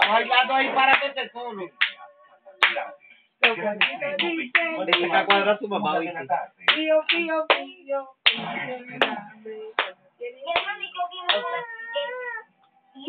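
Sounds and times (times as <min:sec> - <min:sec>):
hand claps: 0:00.0 - 0:01.1, 0:01.8 - 0:02.0, 0:02.6 - 0:05.5, 0:06.6 - 0:09.2, 0:09.8 - 0:11.6
voices singing: 0:01.6 - 0:13.0.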